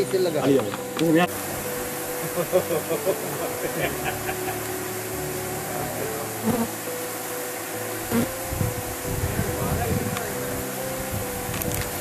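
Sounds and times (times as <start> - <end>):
flies buzzing: 0.0 - 12.0.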